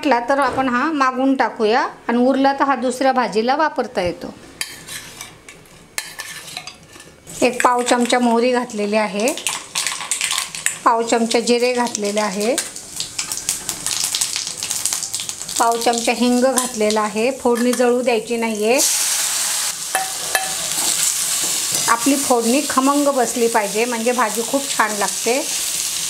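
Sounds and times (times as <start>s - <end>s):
hot oil crackling and sizzling: 7.3s - 26.0s.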